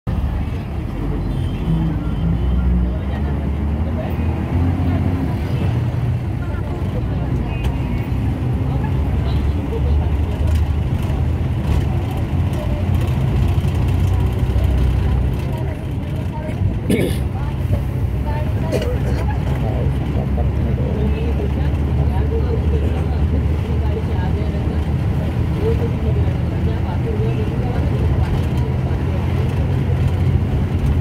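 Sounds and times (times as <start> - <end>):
vehicle engine and tyre rumble: 0.1 - 31.0.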